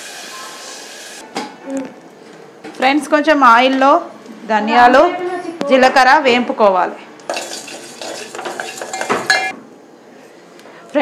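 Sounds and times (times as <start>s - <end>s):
spoon scraping metal pot: 7.3s - 9.6s.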